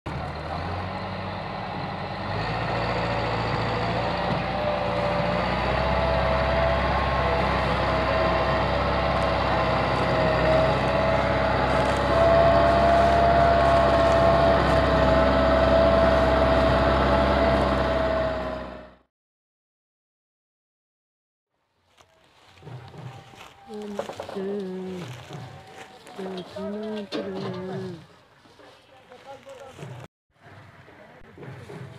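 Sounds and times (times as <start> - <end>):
tractor diesel engine working hard: 0.1 - 19.1, 22.6 - 28.0.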